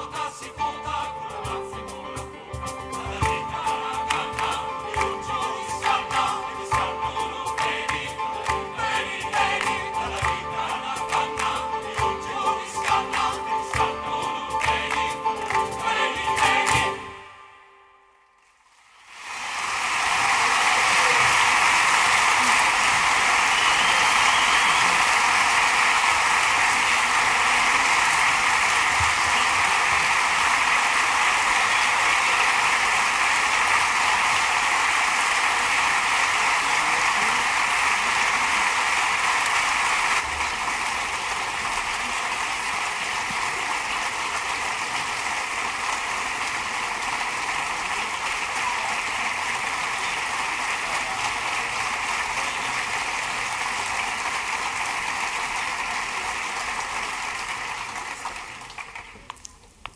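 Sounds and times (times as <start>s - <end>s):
large audience applauding: 3.1s - 17.2s, 18.4s - 59.7s.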